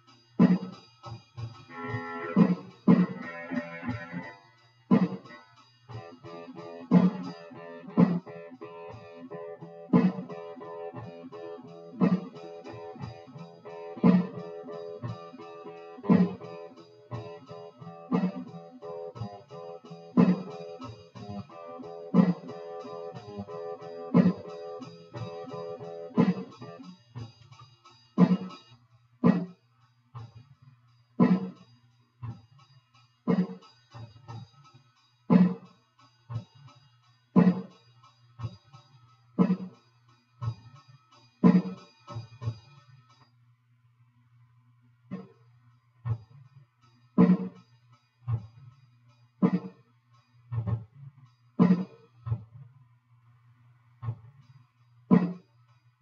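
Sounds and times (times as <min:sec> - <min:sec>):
electric guitar playing: 0:01.7 - 0:04.4.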